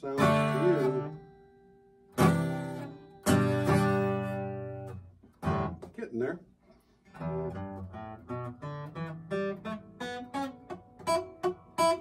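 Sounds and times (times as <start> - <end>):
acoustic guitar strumming: 0.0 - 6.1, 7.0 - 12.0.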